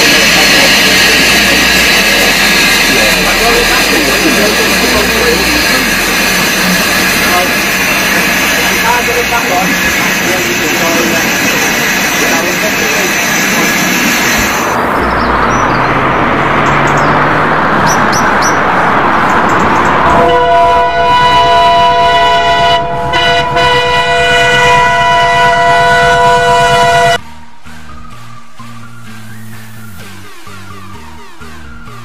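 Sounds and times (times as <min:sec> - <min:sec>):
train running: 0:00.0 - 0:32.0
train horn chord: 0:20.2 - 0:27.3.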